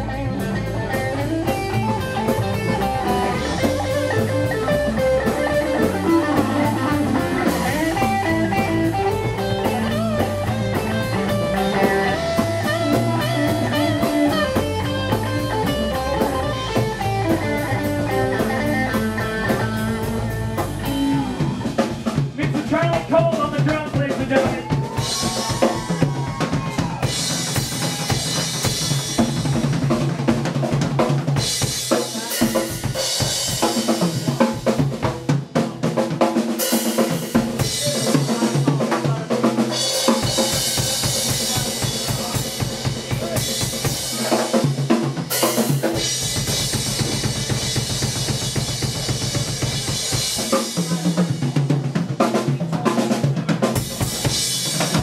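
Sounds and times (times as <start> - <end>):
blues-rock band playing: 0.0 - 55.0
drum kit: 0.0 - 55.0
electric guitar: 0.0 - 55.0.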